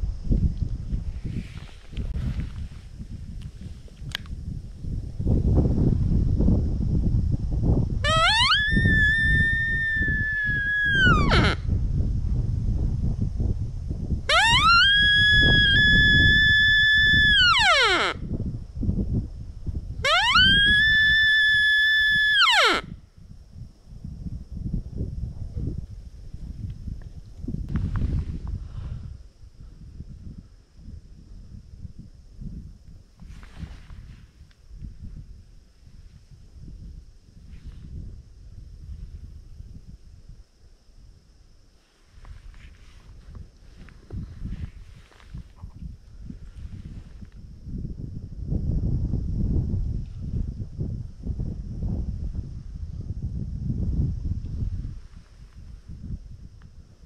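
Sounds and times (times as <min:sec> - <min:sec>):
stag call whistle: 0:08.0 - 0:11.6, 0:14.3 - 0:18.2, 0:20.0 - 0:22.9.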